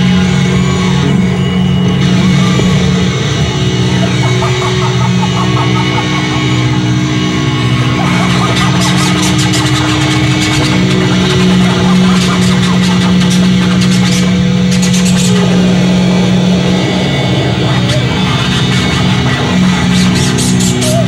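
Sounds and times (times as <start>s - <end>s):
distorted electric guitars droning: 0.0s - 21.0s
drums: 0.0s - 21.0s.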